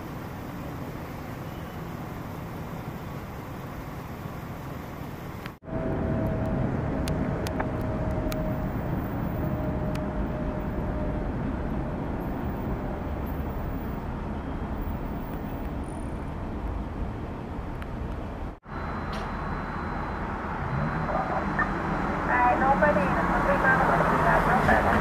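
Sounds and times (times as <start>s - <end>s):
idling vehicles rumbling: 0.0s - 25.0s
faint steady tone: 18.6s - 22.7s.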